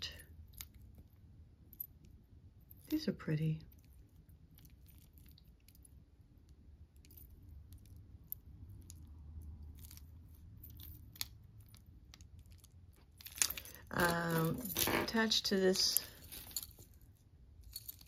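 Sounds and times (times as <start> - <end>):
low steady hum: 0.0 - 18.0
metal bracelet clinking: 3.7 - 6.1, 6.9 - 18.0.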